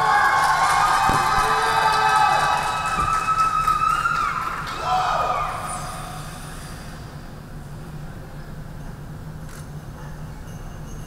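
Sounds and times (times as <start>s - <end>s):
spectators cheering and whooping: 0.0s - 6.2s
sharp knocks: 1.0s - 1.9s.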